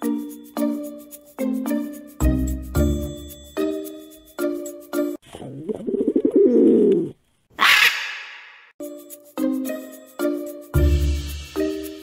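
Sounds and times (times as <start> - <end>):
dove cooing: 5.6 - 7.2.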